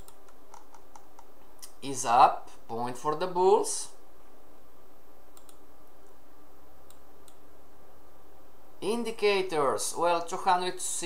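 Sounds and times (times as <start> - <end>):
computer mouse clicks: 0.0 - 1.8, 5.3 - 5.6, 6.8 - 7.4
steady low hum: 0.0 - 11.0.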